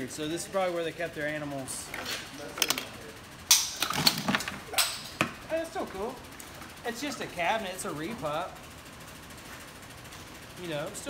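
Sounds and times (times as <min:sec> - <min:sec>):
short clicks and rattles: 0:01.9 - 0:04.9.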